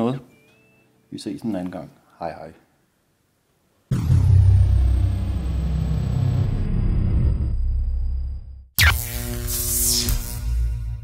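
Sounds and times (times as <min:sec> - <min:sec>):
loud deep drone: 0:03.9 - 0:09.2
thin high whine falling in pitch: 0:03.9 - 0:11.0.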